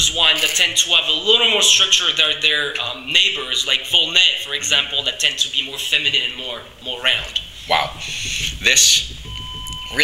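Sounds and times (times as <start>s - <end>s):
electronic beep: 9.1s - 10.0s.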